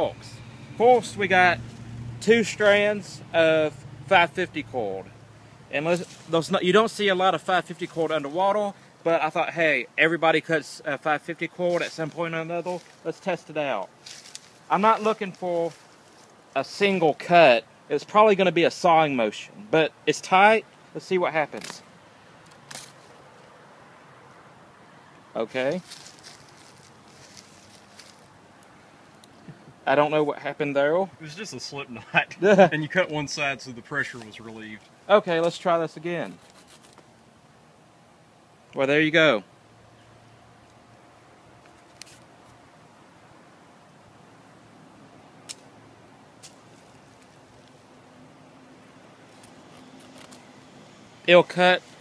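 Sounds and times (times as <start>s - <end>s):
knife scraping cord: 36.2s - 37.0s, 41.7s - 42.3s.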